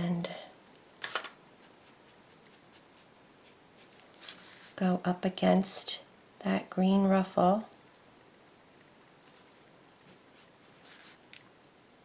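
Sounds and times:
paintbrush strokes on wood: 0:01.6 - 0:04.8, 0:09.2 - 0:11.2.

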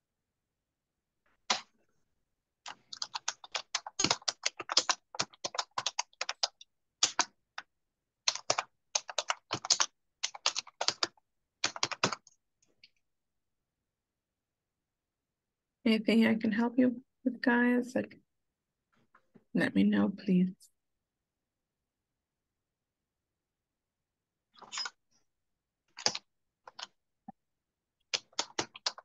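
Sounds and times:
computer keyboard typing: 0:02.7 - 0:12.3, 0:25.9 - 0:26.9, 0:28.1 - 0:29.0.

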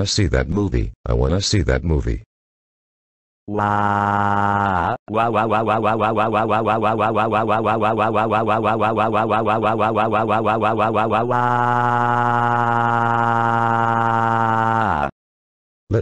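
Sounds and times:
synthesized voice wailing: 0:03.5 - 0:15.1.

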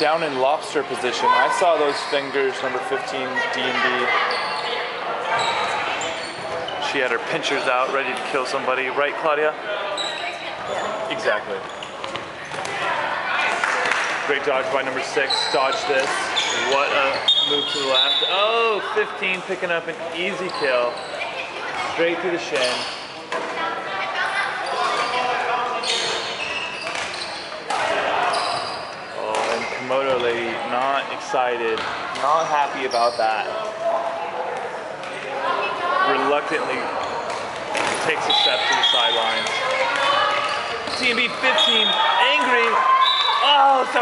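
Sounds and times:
players' voices echoing: 0:00.0 - 0:44.0
balls bouncing on wooden court: 0:11.7 - 0:12.9.

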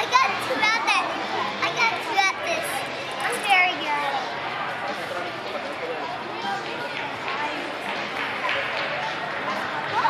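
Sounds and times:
children chattering and calling out: 0:00.0 - 0:04.7.

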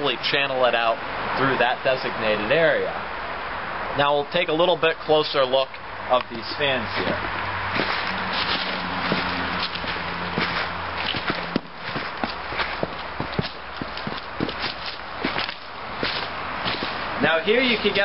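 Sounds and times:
footsteps on leaves and gravel: 0:06.5 - 0:18.0.

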